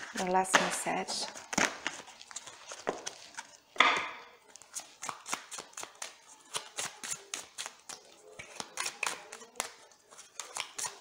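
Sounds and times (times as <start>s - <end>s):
cards being shuffled: 4.5s - 11.0s.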